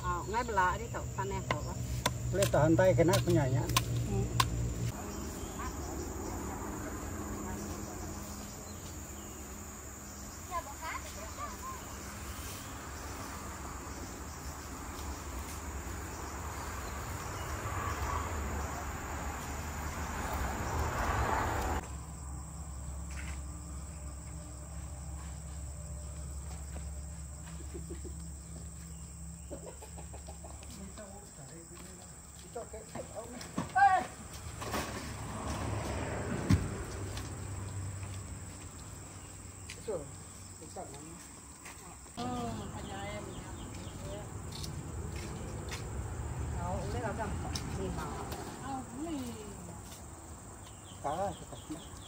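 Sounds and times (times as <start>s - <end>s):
high-pitched insect trill: 0.0s - 34.2s.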